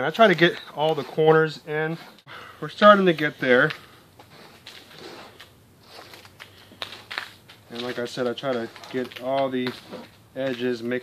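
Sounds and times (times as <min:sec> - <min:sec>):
hands mixing soil: 0:00.0 - 0:11.0.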